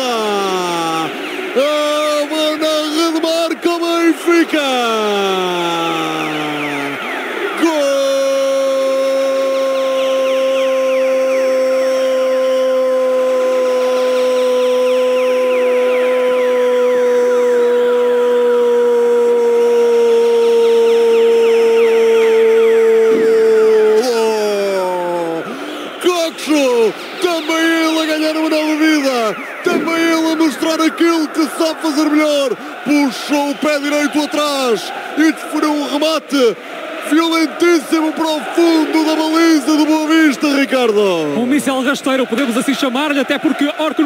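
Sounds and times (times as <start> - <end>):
commentator shouting goal: 0.0 - 44.0.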